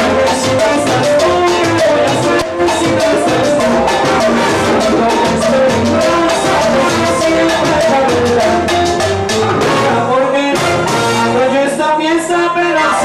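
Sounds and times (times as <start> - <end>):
percussion rhythm: 0.0 - 13.0
salsa band playing: 0.0 - 13.0.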